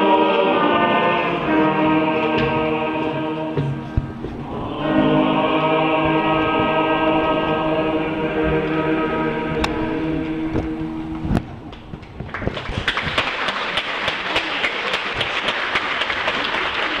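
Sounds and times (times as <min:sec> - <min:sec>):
men's choir holding chord: 0:00.0 - 0:11.4
congregation applauding: 0:12.2 - 0:17.0.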